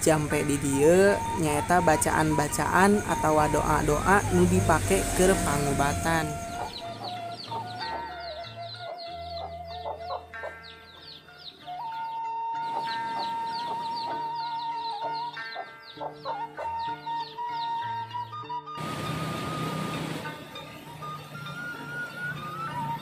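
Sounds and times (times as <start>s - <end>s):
soft background music: 0.0s - 23.0s
chicks peeping: 1.8s - 17.8s.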